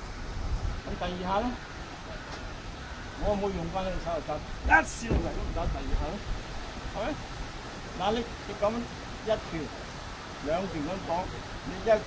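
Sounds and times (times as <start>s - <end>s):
outdoor hiss: 0.0s - 12.0s
man speaking: 3.2s - 6.2s.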